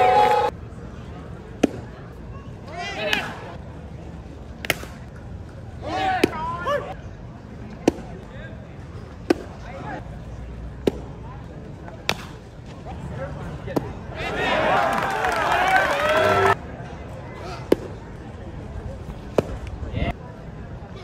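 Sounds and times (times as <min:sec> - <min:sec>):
fans shouting: 0:00.0 - 0:00.5, 0:14.1 - 0:16.6
crowd yelling: 0:00.0 - 0:00.6, 0:14.1 - 0:16.6
ballpark ambience: 0:00.0 - 0:21.0
baseball smacking into mitt: 0:04.6 - 0:05.0, 0:12.0 - 0:12.4.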